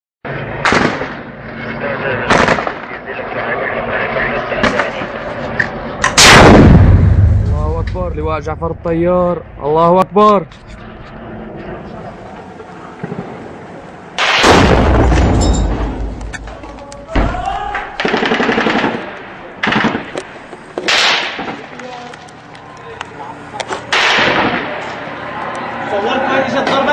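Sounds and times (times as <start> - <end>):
noisy background: 0.3 - 26.9
loud gunshot: 0.6 - 1.3, 2.3 - 2.9, 6.0 - 8.2, 14.2 - 16.2, 20.8 - 21.6, 23.9 - 24.8
machine gun fire bursts: 18.0 - 20.2.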